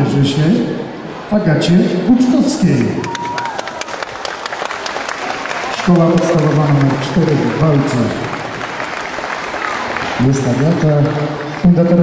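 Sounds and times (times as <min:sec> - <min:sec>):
audience applauding: 0:03.0 - 0:12.0.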